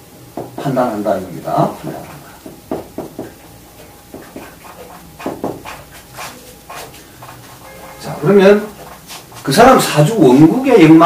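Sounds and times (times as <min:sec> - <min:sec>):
marker writing on whiteboard: 0:02.4 - 0:10.1.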